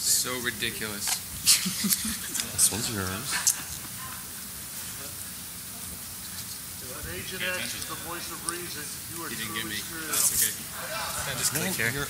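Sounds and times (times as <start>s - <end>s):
murmur of an audience: 1.4s - 12.0s.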